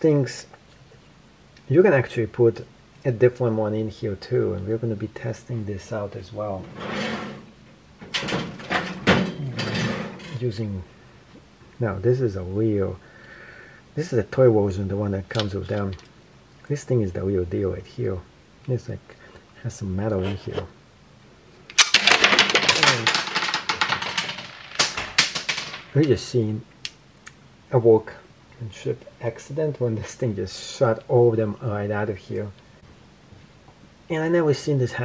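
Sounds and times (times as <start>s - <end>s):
balls clattering on a table: 6.7s - 10.4s, 21.6s - 26.3s.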